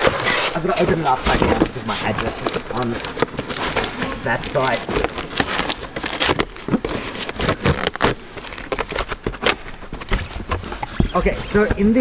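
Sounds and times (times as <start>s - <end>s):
cardboard flaps rustling: 0.0s - 12.0s
cardboard tearing: 0.0s - 12.0s.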